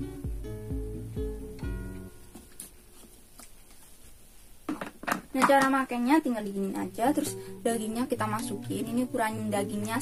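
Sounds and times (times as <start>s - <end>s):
plucked guitar background music: 0.0s - 2.7s, 6.7s - 10.0s.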